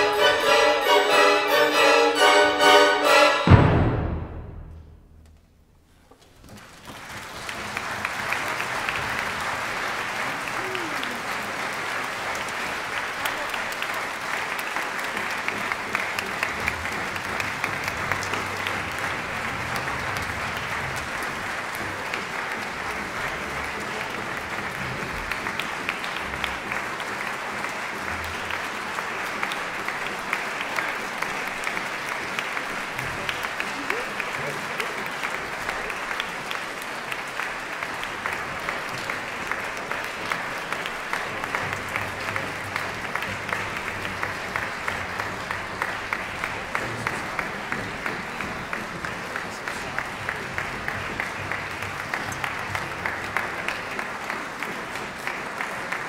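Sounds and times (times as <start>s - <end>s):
audience applause: 0.0s - 3.6s, 6.3s - 56.0s.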